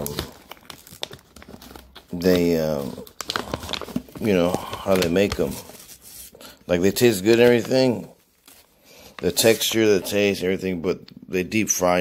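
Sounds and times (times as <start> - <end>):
plastic bag crinkling: 0.0 - 10.6.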